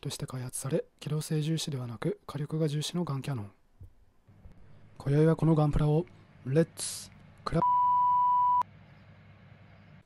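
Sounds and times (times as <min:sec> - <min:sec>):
high electronic bleep tone: 0:07.6 - 0:08.6.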